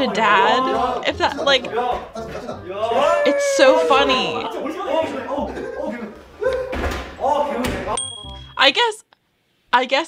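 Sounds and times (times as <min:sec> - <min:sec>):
voices talking: 0:00.0 - 0:08.7.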